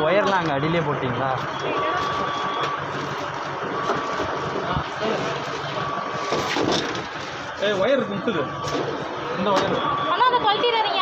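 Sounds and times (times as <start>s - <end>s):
ambulance engine running: 0.0s - 11.0s.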